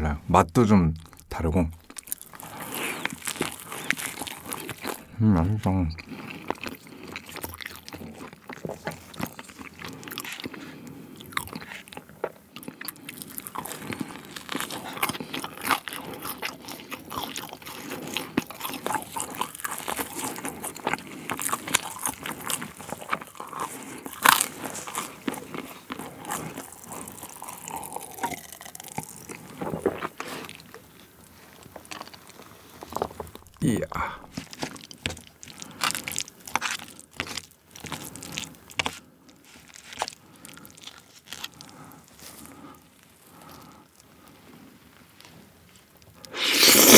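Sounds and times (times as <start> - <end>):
crunchy bites and chewing: 0.9 - 5.1, 6.0 - 30.8, 31.5 - 44.1, 46.1 - 46.9.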